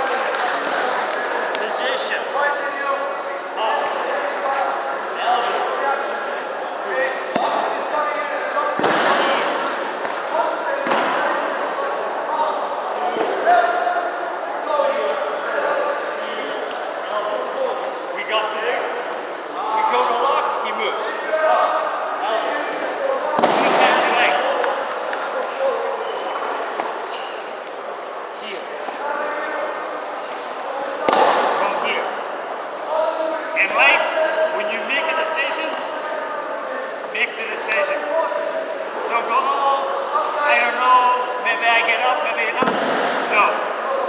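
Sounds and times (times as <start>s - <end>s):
voices talking in a hall: 0.0s - 44.0s
loud thumps: 8.8s - 9.7s.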